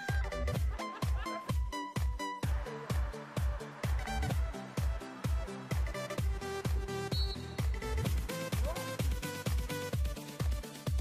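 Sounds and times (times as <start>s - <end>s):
kick drum beat: 0.0s - 11.0s.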